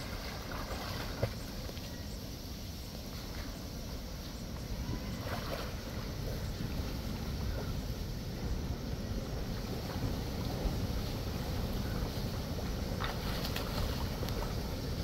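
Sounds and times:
wind rumble on microphone: 0.0s - 15.0s.

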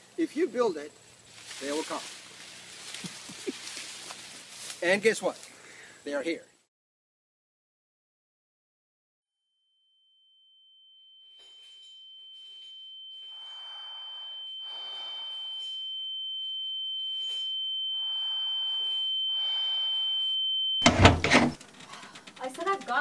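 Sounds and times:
high-pitched steady tone: 10.1s - 21.3s.

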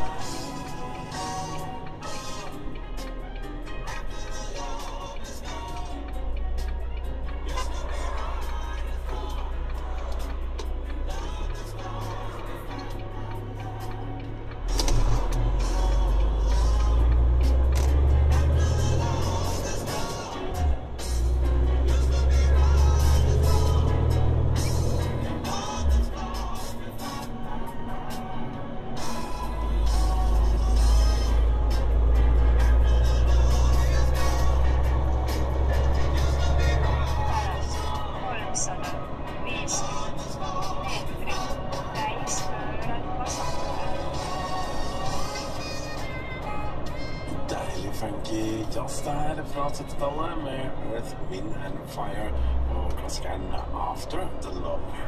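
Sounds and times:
music with heavy bass from radio: 0.0s - 55.0s
road noise: 0.0s - 55.0s.

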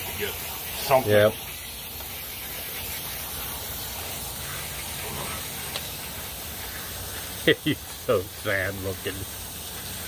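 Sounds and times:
hose water spraying: 0.0s - 10.0s.

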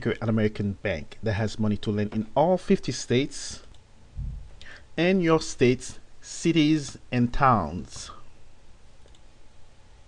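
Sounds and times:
low steady hum: 0.0s - 10.0s
computer mouse click: 9.0s - 9.3s.

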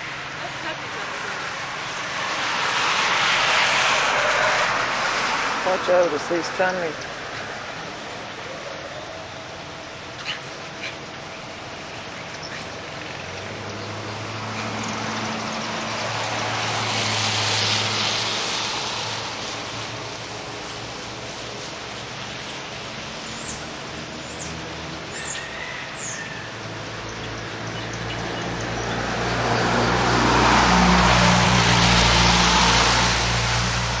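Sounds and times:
motor vehicles passing: 0.0s - 34.0s.

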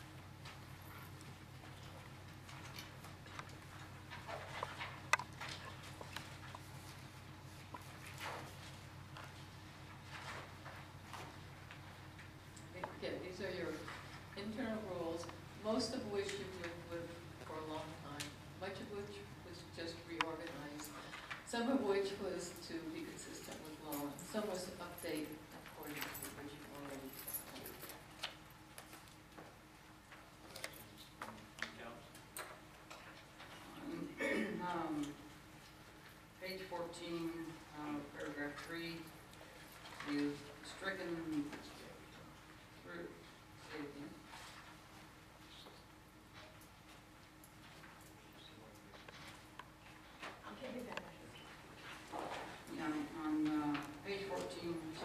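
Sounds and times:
low electrical hum: 0.0s - 55.0s.

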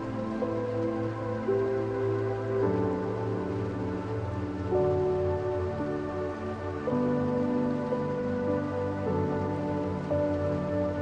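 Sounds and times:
slow instrumental music: 0.0s - 11.0s
stream water rushing: 0.0s - 11.0s.

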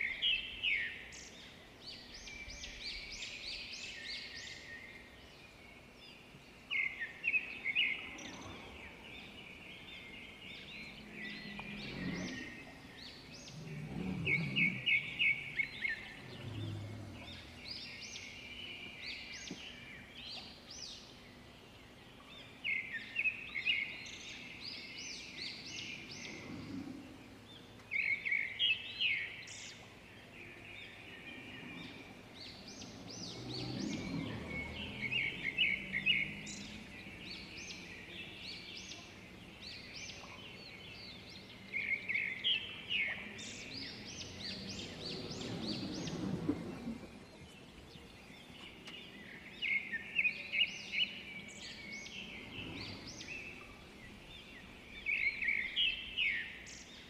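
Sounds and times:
bird chirping: 0.0s - 57.0s
outdoor background noise: 0.0s - 57.0s
faint low rumbles: 7.6s - 20.6s, 25.2s - 28.0s, 29.5s - 42.2s, 42.8s - 50.0s.

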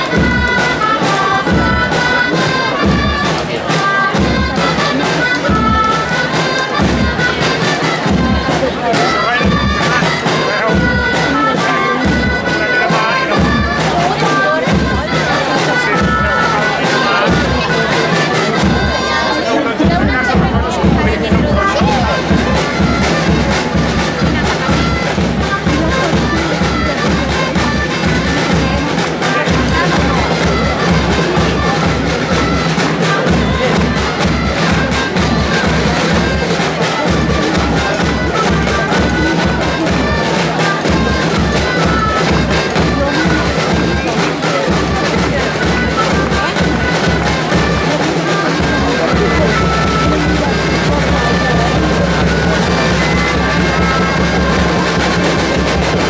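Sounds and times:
steady drum beat: 0.0s - 47.8s, 48.6s - 56.0s
shrill double-reed pipes: 0.0s - 56.0s.

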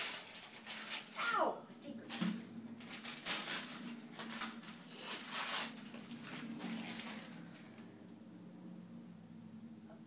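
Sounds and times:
wrapping paper tearing and rustling: 0.0s - 7.7s.

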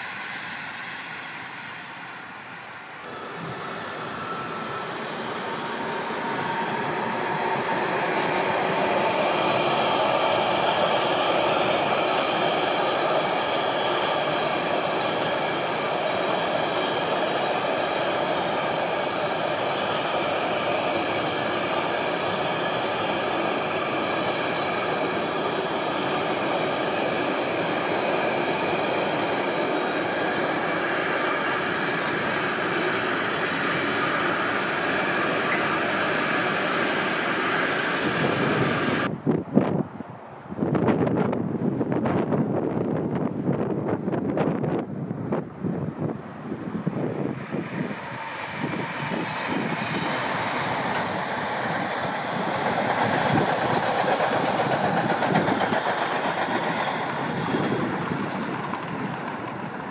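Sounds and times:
freight train rolling on rails: 0.0s - 59.9s.

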